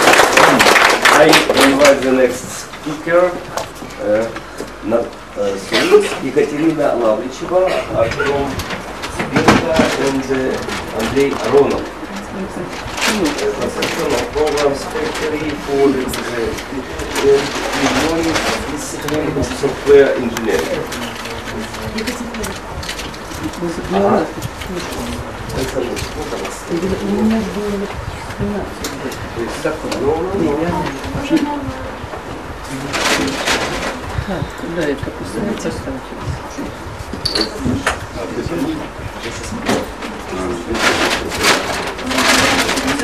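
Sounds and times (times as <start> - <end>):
indistinct low talk: 0.0 - 43.0
rustling and handling noises: 7.9 - 35.7, 36.6 - 43.0.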